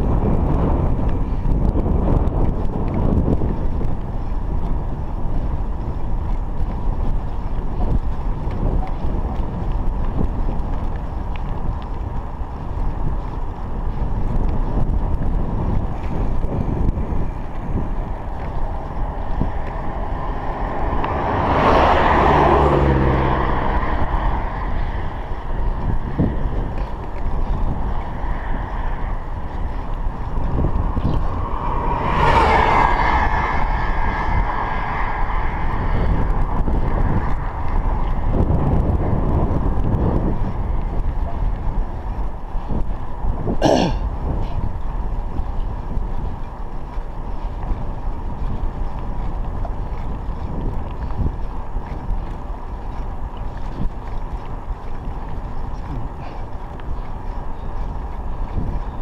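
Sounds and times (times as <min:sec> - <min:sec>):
motor vehicles passing: 0:00.0 - 0:59.0
wind rumble on microphone: 0:00.0 - 0:59.0.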